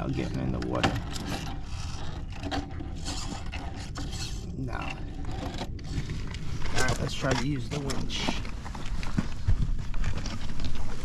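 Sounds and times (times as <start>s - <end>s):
tyres scraping on stone: 0.0s - 11.0s.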